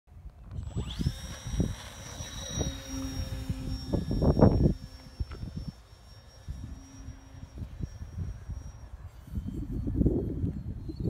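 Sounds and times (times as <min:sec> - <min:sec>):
wind rumble on microphone: 0:00.1 - 0:11.0
model airplane motor whining: 0:00.2 - 0:11.0.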